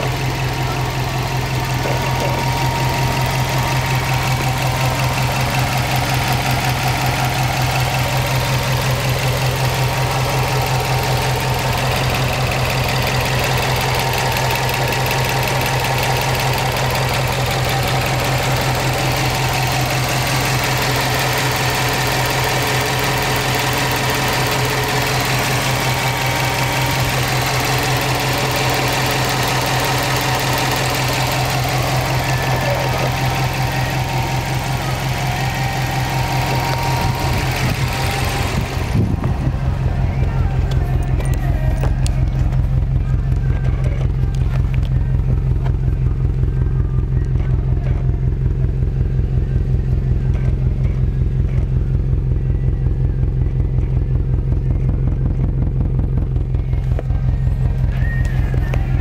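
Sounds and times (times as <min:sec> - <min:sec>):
car engine idling: 0:00.0 - 0:59.0.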